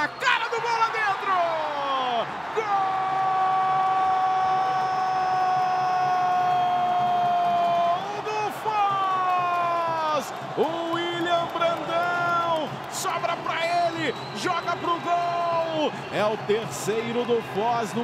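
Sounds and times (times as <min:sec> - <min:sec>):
commentator shouting goal: 0:00.0 - 0:06.2, 0:07.8 - 0:18.0
crowd cheering: 0:00.0 - 0:18.0.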